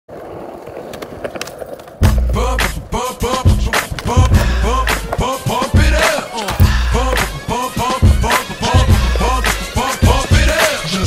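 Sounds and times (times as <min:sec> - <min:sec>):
skateboard wheels rolling on concrete: 0:00.1 - 0:11.0.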